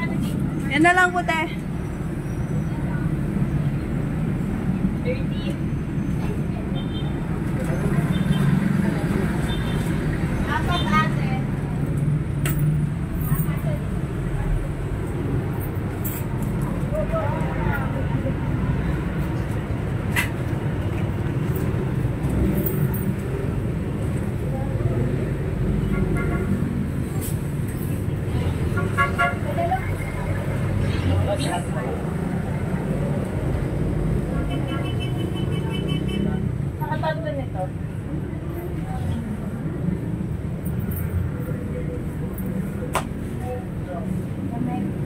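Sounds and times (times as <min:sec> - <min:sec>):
low traffic rumble: 0:00.0 - 0:45.0.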